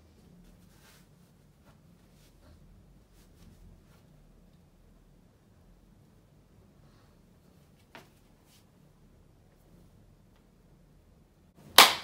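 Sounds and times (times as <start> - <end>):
sharp hand clap: 11.6 - 12.0.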